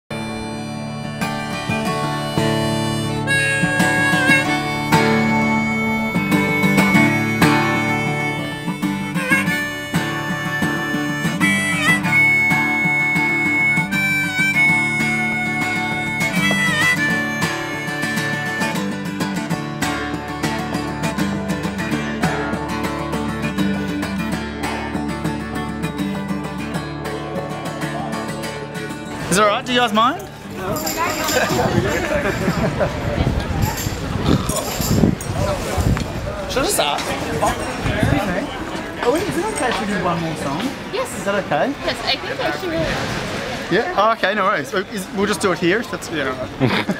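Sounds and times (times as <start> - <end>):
harmonica bending notes: 0.1 - 32.2
strummed acoustic guitar: 0.1 - 43.7.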